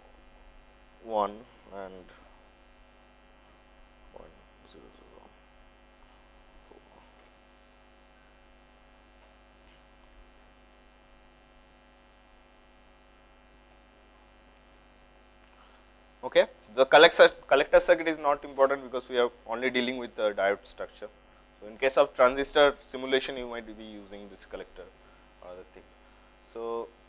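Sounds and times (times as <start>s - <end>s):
electrical mains hum: 0.0s - 27.0s.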